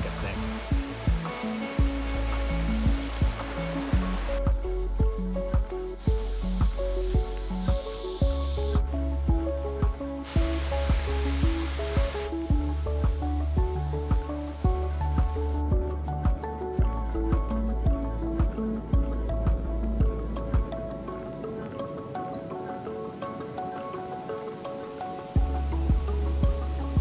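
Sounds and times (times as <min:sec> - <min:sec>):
background music with beat and bass: 0:00.0 - 0:22.0, 0:25.3 - 0:27.0
rushing stream: 0:00.0 - 0:27.0.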